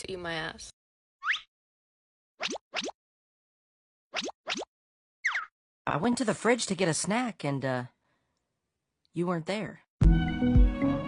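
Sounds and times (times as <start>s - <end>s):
upward-sweeping bloop pops: 2.4s - 3.0s, 4.1s - 5.5s.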